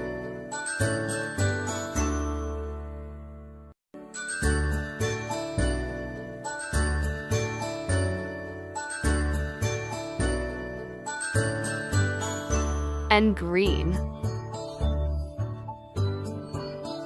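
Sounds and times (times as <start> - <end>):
bell-like tune over bass: 0.0 - 3.6, 4.2 - 17.0.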